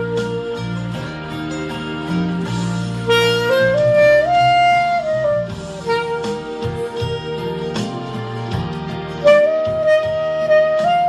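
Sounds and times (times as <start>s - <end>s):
wind instrument melody: 0.0s - 1.5s, 2.7s - 11.0s
low instrumental accompaniment: 0.0s - 11.0s.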